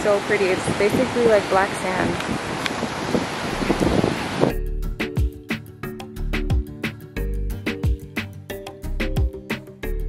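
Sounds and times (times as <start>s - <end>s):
ocean surf: 0.0s - 4.5s
wind on microphone: 0.0s - 4.6s
music with deep beat: 4.5s - 10.0s.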